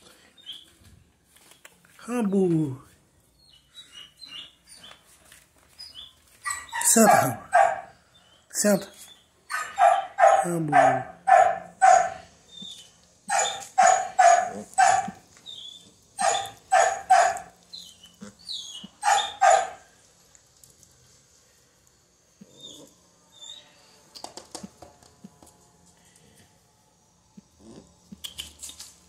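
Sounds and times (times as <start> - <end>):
faint clicks and scuffles: 0.5 - 2.6, 4.8 - 6.5
puppy yapping: 6.4 - 7.9, 9.5 - 15.2, 16.2 - 19.8.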